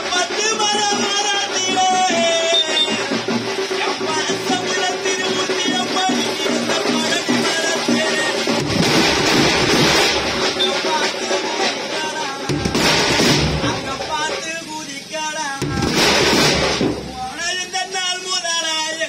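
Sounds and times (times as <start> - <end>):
man calling or singing: 0.0 - 8.8, 10.4 - 19.0
drums playing in loud bursts: 0.0 - 19.0.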